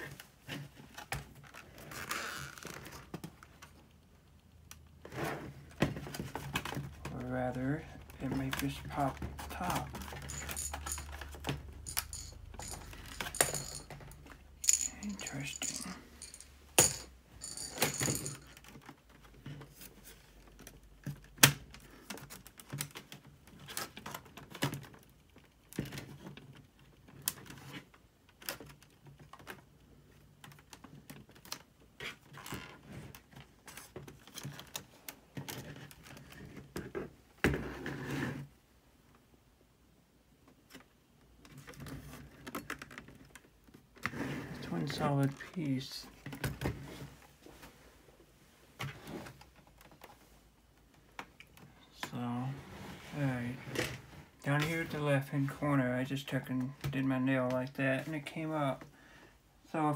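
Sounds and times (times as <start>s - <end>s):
handling noise: 5.0s - 25.0s.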